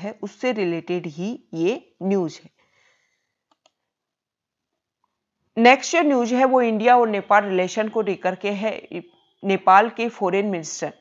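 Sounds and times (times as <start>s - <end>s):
computer mouse clicks: 3.4s - 3.9s.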